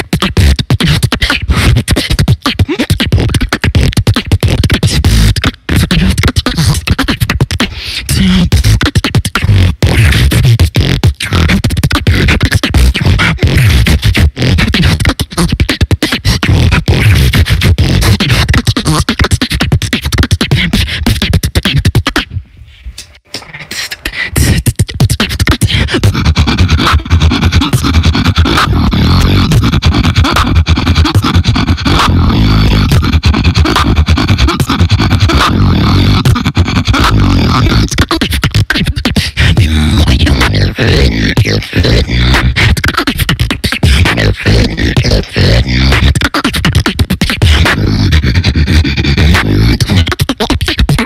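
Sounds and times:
beatboxing mouth percussion: 0.0 - 51.0
deep bass: 26.0 - 38.0, 39.4 - 42.8.

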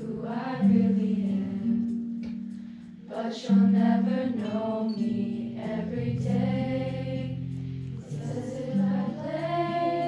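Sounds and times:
girls choir singing in unison: 0.0 - 2.0, 3.0 - 10.0.

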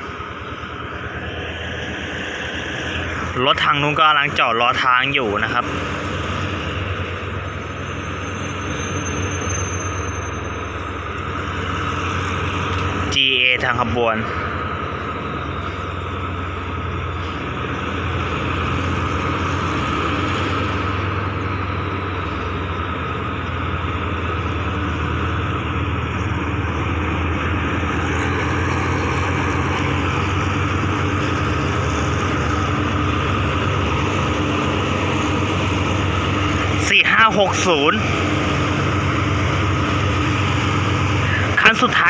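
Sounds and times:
locomotive diesel engine droning: 0.0 - 42.0.

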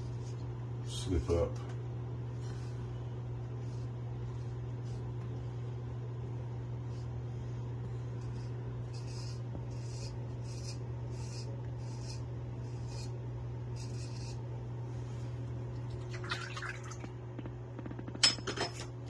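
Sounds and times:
steady low hum: 0.0 - 19.0
razor scraping stubble: 8.0 - 14.5.

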